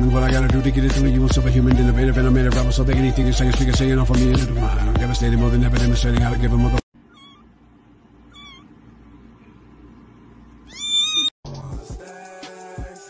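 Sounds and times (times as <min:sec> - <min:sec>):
music: 0:00.0 - 0:06.8, 0:11.4 - 0:13.0
cat-like meows: 0:07.1 - 0:07.5, 0:08.3 - 0:08.7, 0:10.7 - 0:11.3.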